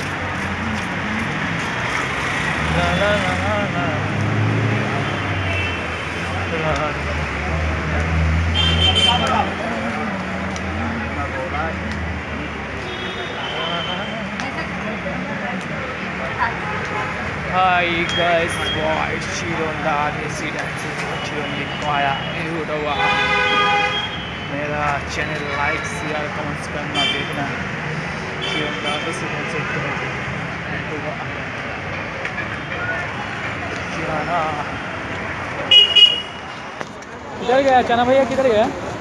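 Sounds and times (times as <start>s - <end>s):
vehicle horn blast: 35.7s - 36.4s.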